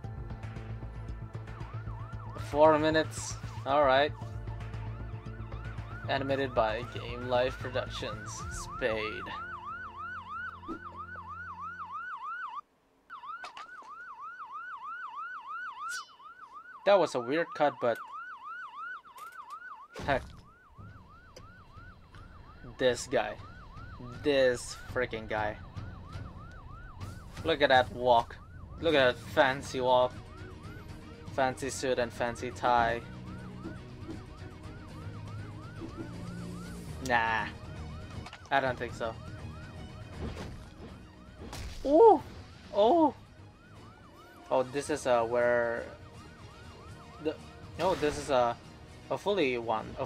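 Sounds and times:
low background music: 0.0 - 12.0, 20.7 - 50.0
police siren yelping: 1.4 - 49.2.

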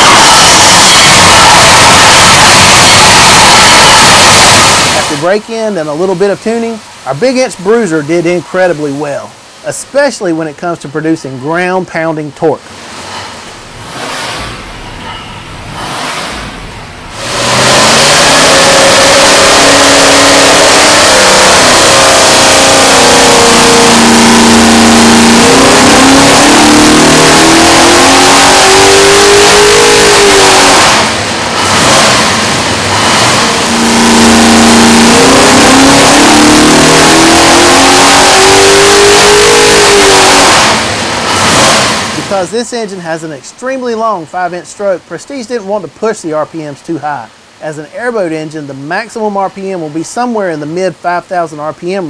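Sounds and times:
engine revving on dyno: 0.0 - 6.1, 12.6 - 42.5.

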